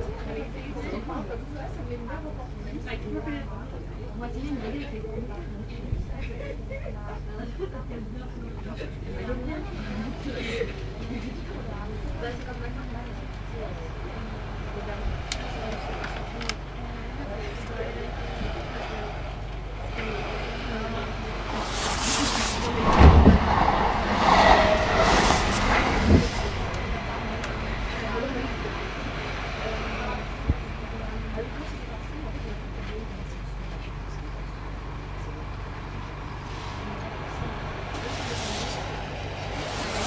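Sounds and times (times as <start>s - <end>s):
faint voices murmuring: 0.0s - 40.0s
low hum in a train carriage: 0.0s - 40.0s
hiss: 21.4s - 27.6s, 37.9s - 40.0s.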